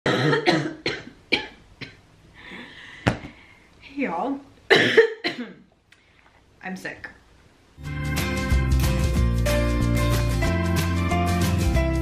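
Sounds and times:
woman coughing: 0.1 - 2.0, 4.7 - 5.7.

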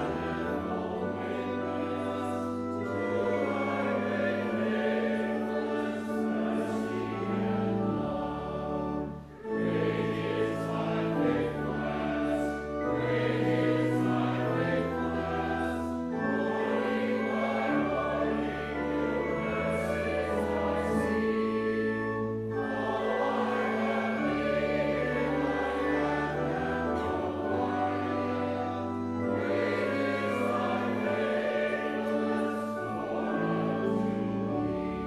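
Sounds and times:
church choir singing: 0.0 - 35.0.

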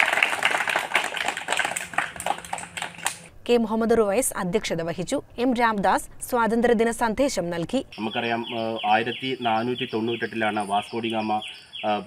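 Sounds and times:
people clapping: 0.0 - 3.3.

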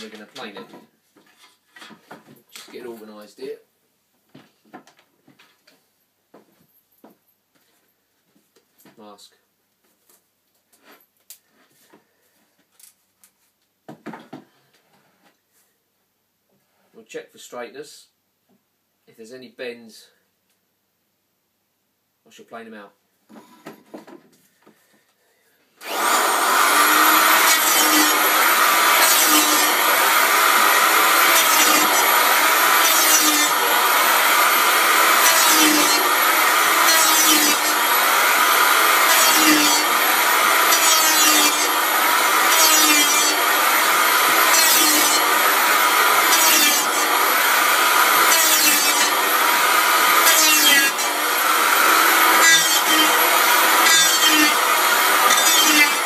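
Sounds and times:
power planer shaving wood: 25.8 - 56.0.

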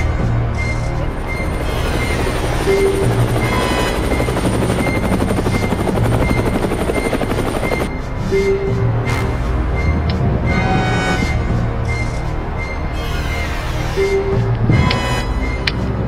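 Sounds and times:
background music: 0.0 - 16.0
helicopter rotor pulsing: 0.2 - 9.0.

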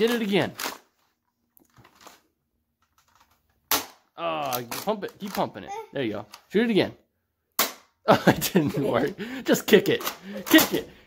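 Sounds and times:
faint clicks of toy handling: 0.0 - 3.6, 4.4 - 5.6, 6.3 - 6.5.

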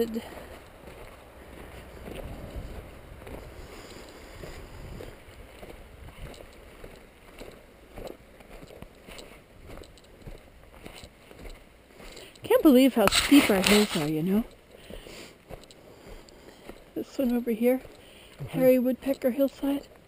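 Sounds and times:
footsteps on snow: 0.0 - 20.0
wind rumble on microphone: 1.5 - 6.8.

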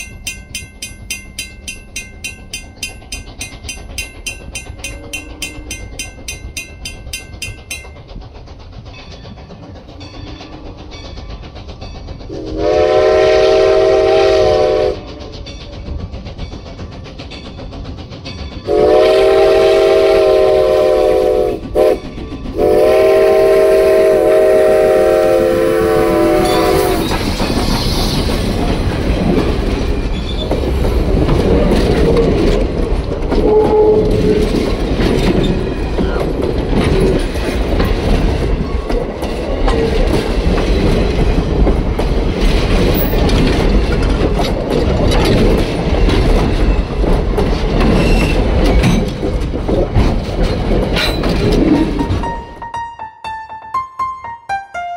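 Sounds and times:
train wheels clattering over rail joints: 0.0 - 52.6
train low rumble: 0.0 - 52.8
steam locomotive whistle: 12.3 - 15.3, 18.7 - 27.2, 33.4 - 34.5.

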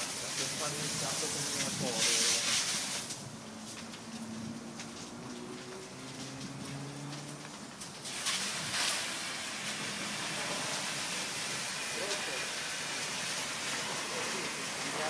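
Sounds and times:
water spraying from fire hose: 0.0 - 15.0.

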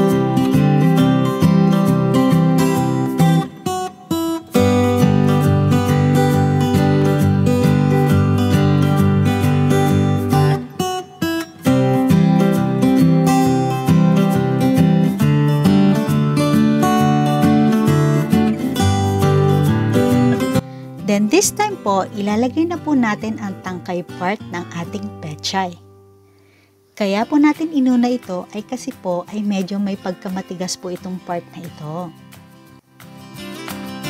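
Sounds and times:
strummed acoustic guitar music: 0.0 - 34.0.

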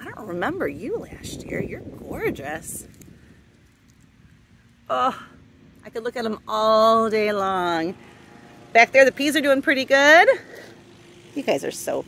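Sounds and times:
woman speaking: 0.0 - 2.9, 4.9 - 8.0, 8.8 - 10.6, 11.4 - 12.0.

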